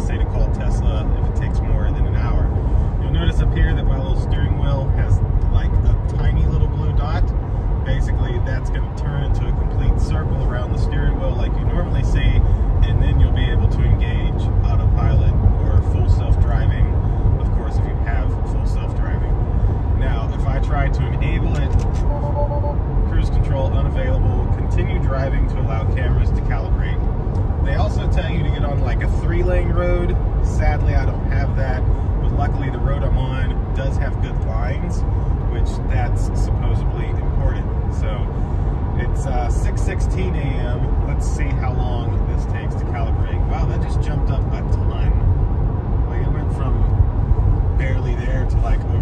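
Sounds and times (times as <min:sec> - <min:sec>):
man talking: 0:00.0 - 0:22.2, 0:23.0 - 0:45.3, 0:46.0 - 0:47.0, 0:47.7 - 0:49.0
road and tyre rumble in car cabin: 0:00.0 - 0:49.0.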